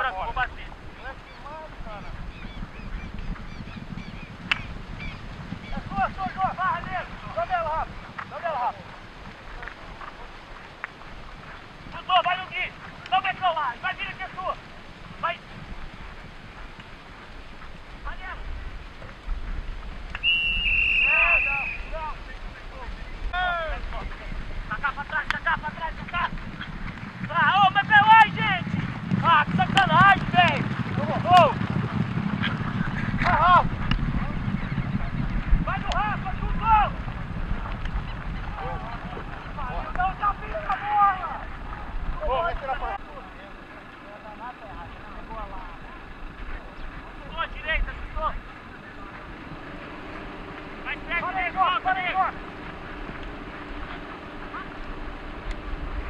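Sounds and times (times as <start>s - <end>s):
players shouting calls: 4.5s - 8.9s, 11.9s - 15.4s, 20.2s - 26.4s, 27.2s - 31.6s, 35.6s - 37.0s, 38.1s - 55.7s
high whistle: 20.2s - 22.0s.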